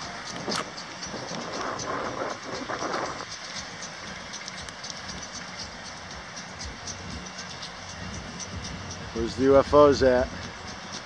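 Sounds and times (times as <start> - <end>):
outdoor rumble with hiss: 0.0 - 11.0.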